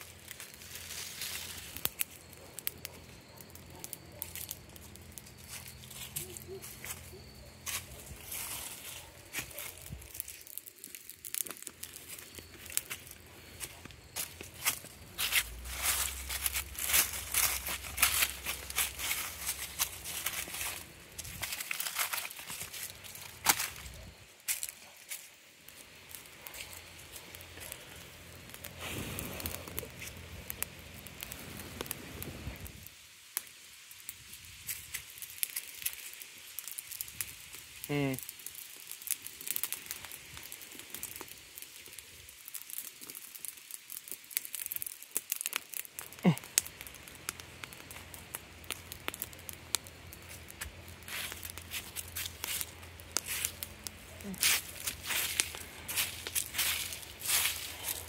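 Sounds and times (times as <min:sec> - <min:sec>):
footsteps crunching through dry leaves: 0:00.3 - 0:02.3, 0:05.4 - 0:27.8, 0:50.2 - 0:58.0
wind rumble on microphone: 0:31.3 - 0:32.9.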